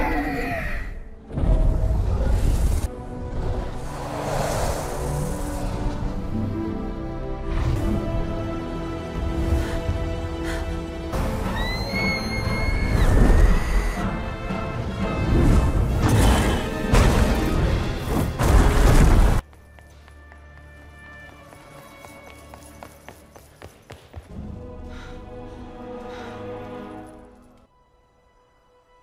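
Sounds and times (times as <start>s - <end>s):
woman screaming: 11.4s - 14.0s.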